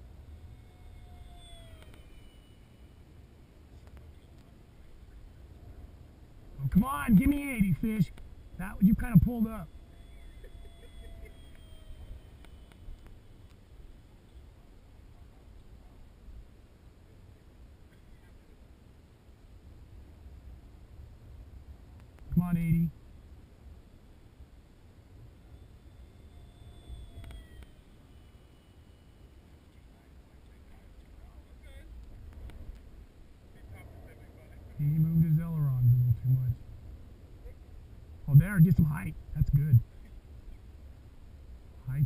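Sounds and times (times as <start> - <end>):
distant electric jet whine: 0.0 - 15.3, 22.6 - 42.0
faint clicks: 1.8 - 2.1, 27.2 - 27.8.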